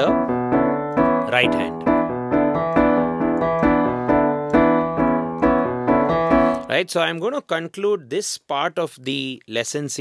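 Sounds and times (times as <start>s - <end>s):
digital piano bass riff: 0.0s - 6.8s
piano block chords: 0.0s - 7.3s.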